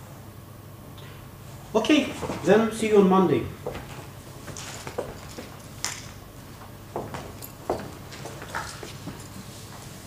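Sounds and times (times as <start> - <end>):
low room hum: 0.0 - 10.0
people shuffling: 1.9 - 2.8, 3.6 - 5.8, 6.4 - 10.0.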